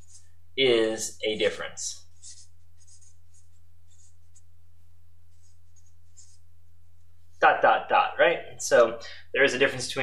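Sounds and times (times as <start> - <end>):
marker scratching on paper: 0.0 - 0.3, 1.4 - 4.5, 5.3 - 6.4
steady low hum: 0.0 - 10.0.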